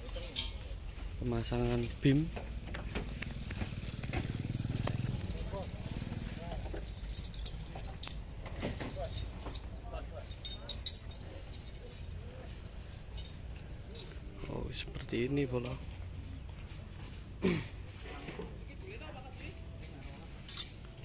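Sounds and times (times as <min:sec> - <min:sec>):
sharp clinks and knocks: 0:01.5 - 0:14.7, 0:20.2 - 0:21.0
small motorcycle engine running: 0:02.6 - 0:06.7.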